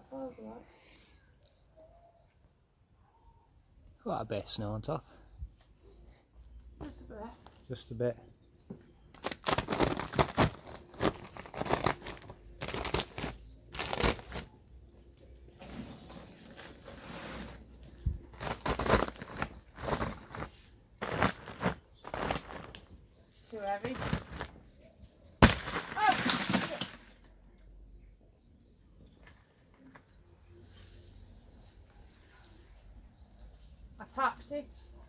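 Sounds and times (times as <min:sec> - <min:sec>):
snow and ice crunching: 0:15.6 - 0:24.6, 0:25.4 - 0:27.1.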